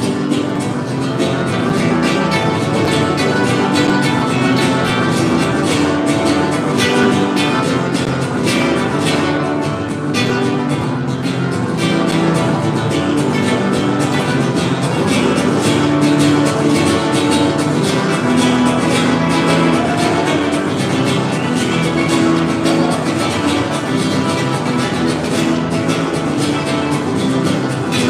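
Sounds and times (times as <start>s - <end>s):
acoustic guitar playing: 0.0s - 28.0s.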